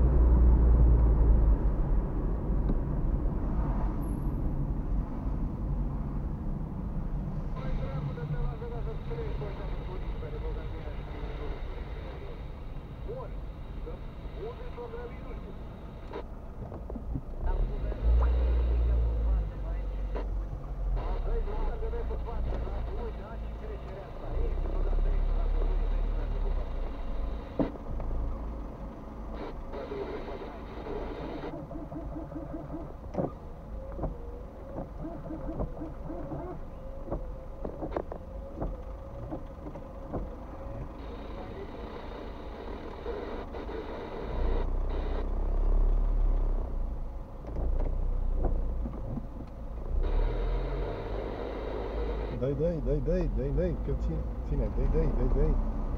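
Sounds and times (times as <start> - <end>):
car engine idling: 7.0 - 55.9.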